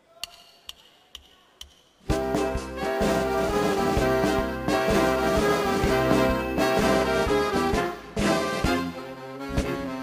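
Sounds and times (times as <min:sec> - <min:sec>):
wooden clicks count-in: 0:00.2 - 0:02.0
tango music: 0:02.1 - 0:10.0.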